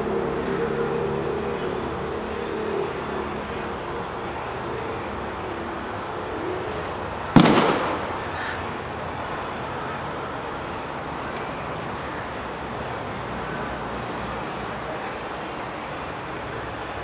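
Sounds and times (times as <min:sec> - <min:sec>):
steady background noise: 0:00.0 - 0:17.0.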